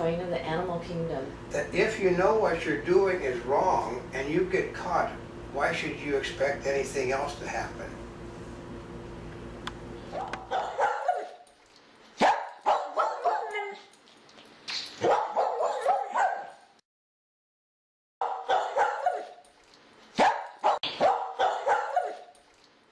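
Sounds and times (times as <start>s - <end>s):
dog barking and yipping: 10.1s - 14.0s, 14.9s - 16.8s, 18.2s - 19.5s, 20.1s - 22.4s.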